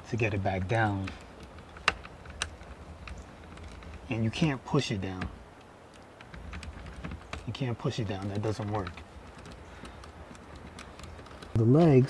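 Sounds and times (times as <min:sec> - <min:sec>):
tripod crank handle ticking: 0:00.5 - 0:11.6
sharp clicks: 0:00.6 - 0:11.6.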